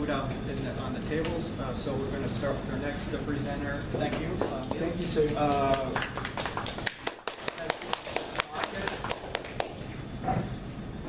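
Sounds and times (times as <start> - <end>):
people clapping: 4.1 - 10.0.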